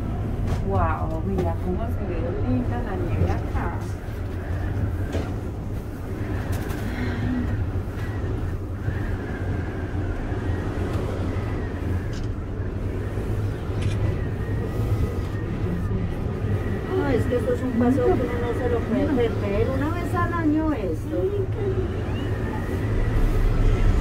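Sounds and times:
ski lift rumble and hum: 0.0s - 24.0s.

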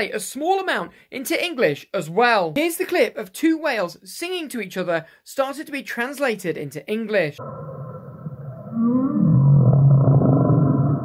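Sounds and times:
whale moaning call: 7.4s - 11.0s.

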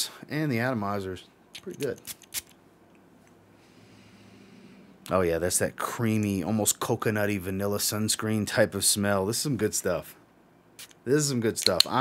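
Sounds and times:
perfume atomizer sprays: 10.8s - 11.0s.

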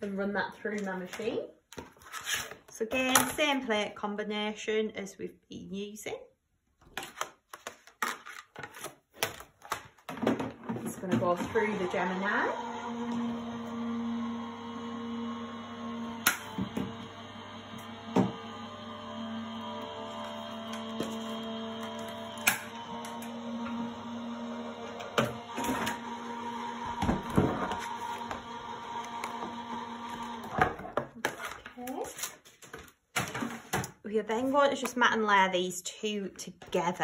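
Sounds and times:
cutting machine motor humming: 11.3s - 30.8s.

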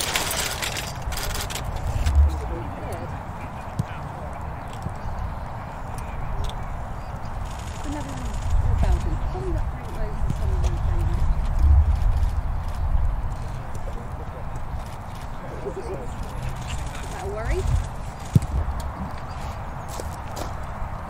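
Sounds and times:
wind rumble on microphone: 0.0s - 3.5s, 4.4s - 21.0s
distant voices: 0.0s - 21.0s.

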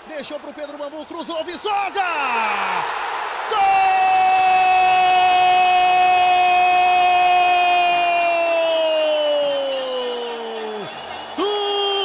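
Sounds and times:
commentator shouting goal: 3.5s - 12.0s.

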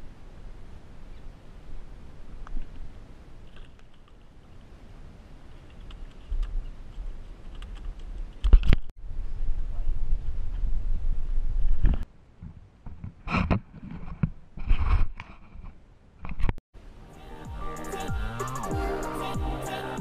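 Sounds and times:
background music with a beat: 17.1s - 20.0s.

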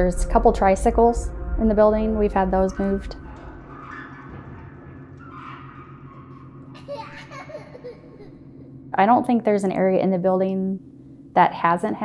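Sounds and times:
low steady hum: 0.0s - 12.0s
child-like giggling: 6.8s - 8.4s.

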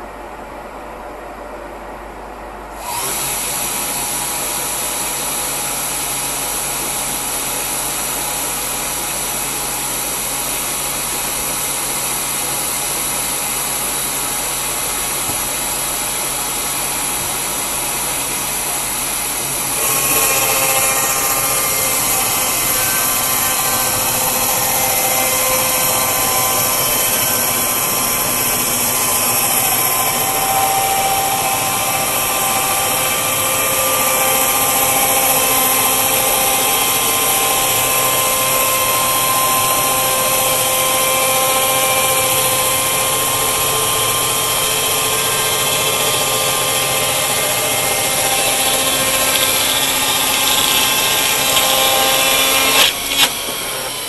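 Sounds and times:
sawmill cutting log: 2.7s - 54.0s.

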